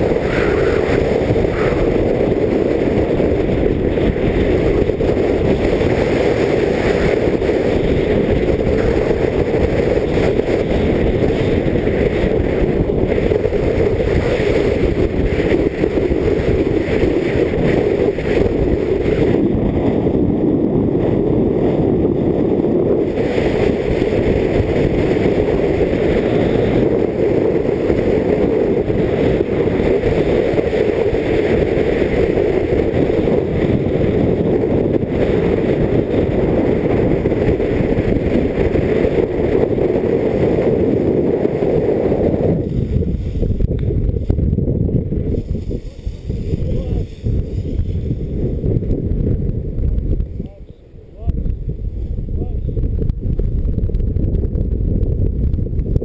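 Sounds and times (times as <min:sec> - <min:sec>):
wind rumbling over microphone: 0:00.0 - 0:56.0.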